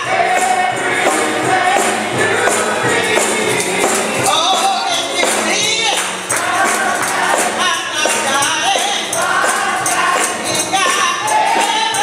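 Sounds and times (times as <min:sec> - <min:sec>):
gospel group singing: 0:00.0 - 0:12.0
tambourine jingling: 0:00.0 - 0:12.0.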